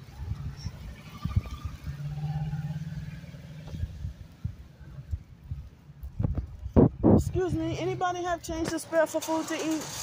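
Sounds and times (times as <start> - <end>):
vehicle engine hum: 0.0 - 10.0.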